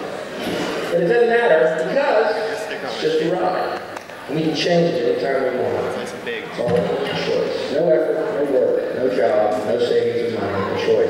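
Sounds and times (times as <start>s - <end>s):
man speaking: 0.9s - 11.0s.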